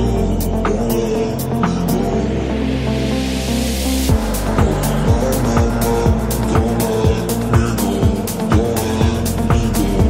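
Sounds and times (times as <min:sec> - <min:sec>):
electro house dance track: 0:00.0 - 0:10.0
sustained synth chords: 0:00.0 - 0:10.0
rising noise build: 0:01.6 - 0:10.0
crisp hi-hats: 0:04.0 - 0:10.0
deep pitch-falling kick drum: 0:04.1 - 0:10.0.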